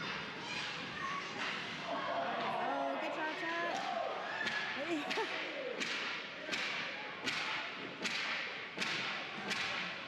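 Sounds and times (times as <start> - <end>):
hockey sticks and puck on ice: 5.8 - 10.0.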